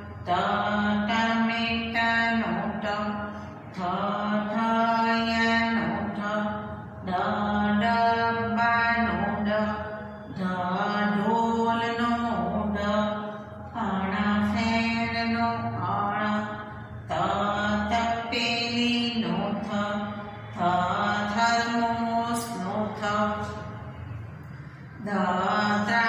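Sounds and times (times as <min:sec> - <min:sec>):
woman chanting letters: 0:00.0 - 0:23.8, 0:25.0 - 0:26.0.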